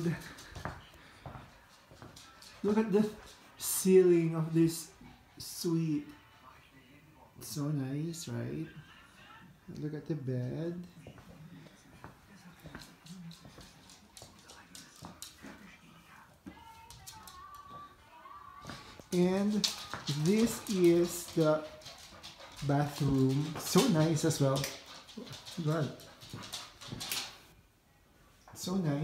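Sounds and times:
dog panting and snuffling: 18.7s - 27.5s.

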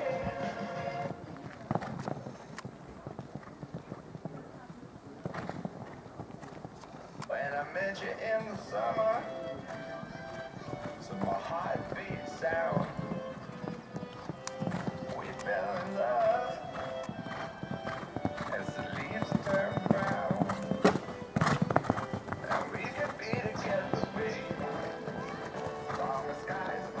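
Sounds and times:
pop song: 0.0s - 1.1s, 18.5s - 20.5s, 22.5s - 27.0s
horse hoofbeats on sand: 0.0s - 27.0s.

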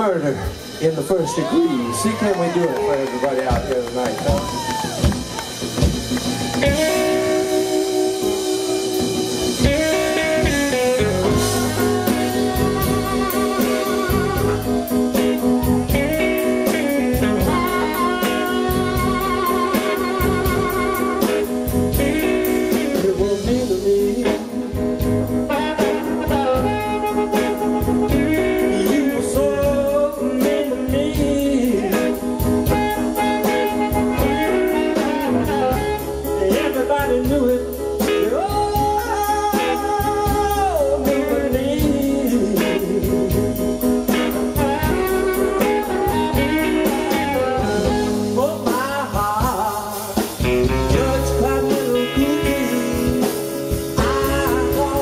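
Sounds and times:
blues band playing live: 0.0s - 55.0s
amplified harmonica: 6.4s - 23.0s, 25.5s - 29.6s.

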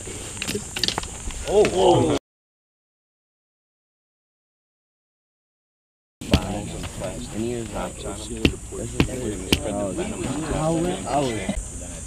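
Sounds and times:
rock knocking wooden stake: 6.3s - 6.9s, 8.4s - 9.8s.

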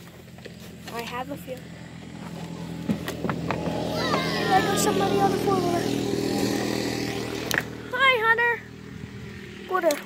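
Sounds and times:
quad bike engine idling: 0.0s - 10.0s.

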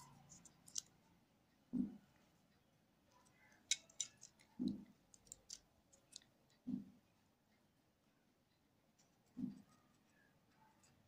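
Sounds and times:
knife scoring fruit rind: 3.6s - 6.2s.

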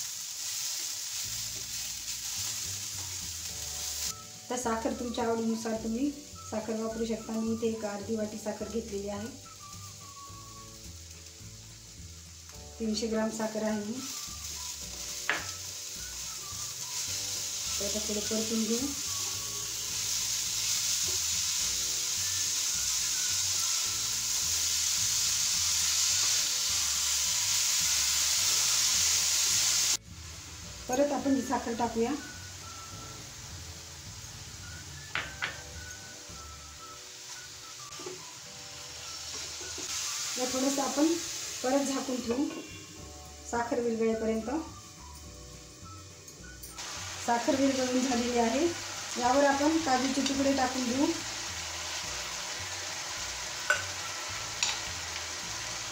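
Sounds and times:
carrots sizzling in a pan: 0.0s - 55.9s
woman talking: 4.5s - 9.4s, 12.8s - 14.1s, 17.8s - 19.0s, 30.9s - 32.3s, 40.4s - 42.7s, 43.5s - 44.7s, 47.3s - 51.2s.

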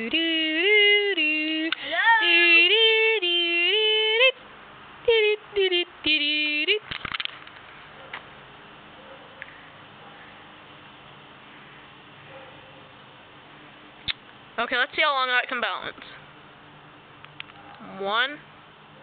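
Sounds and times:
child singing wordless notes: 0.0s - 4.3s.

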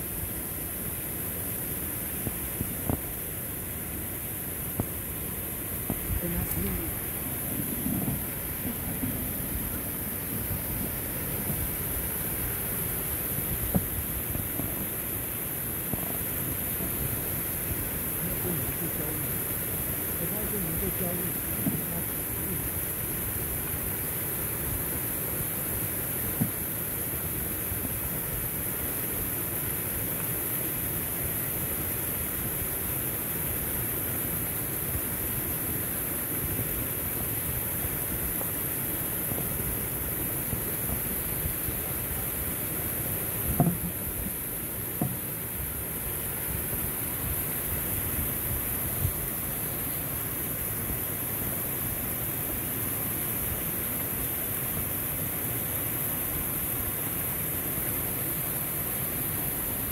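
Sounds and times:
stream rushing over rocks: 0.0s - 59.9s
short knocks: 43.5s - 44.0s.

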